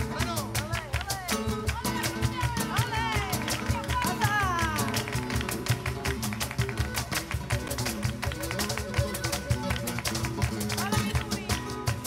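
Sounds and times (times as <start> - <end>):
person singing flamenco: 0.0 - 12.0.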